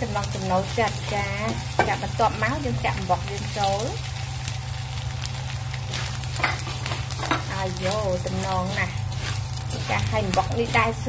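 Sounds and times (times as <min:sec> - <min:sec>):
food stir-frying in wok: 0:00.0 - 0:11.0
spatula scraping metal wok: 0:05.8 - 0:11.0.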